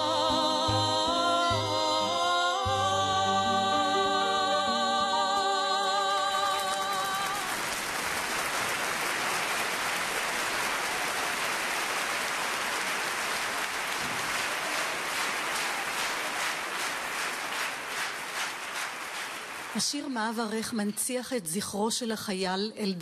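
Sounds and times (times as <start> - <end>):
audience applauding: 6.0 - 20.1.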